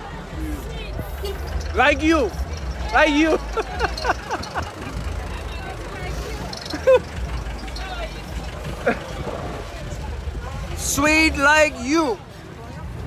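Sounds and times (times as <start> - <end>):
voices and laughter: 0.0 - 12.2
vehicle engines rumbling: 0.0 - 13.0.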